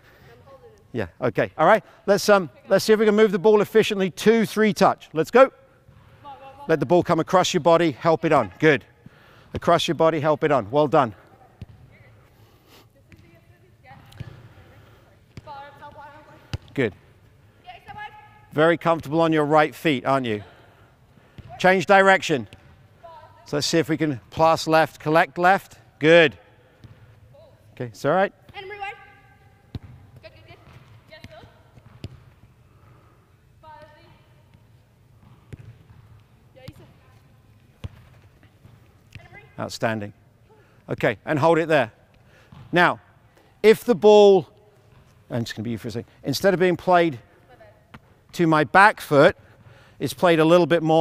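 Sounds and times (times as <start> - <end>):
ball kicks on artificial turf: 29.7 - 32.4, 35.2 - 36.0.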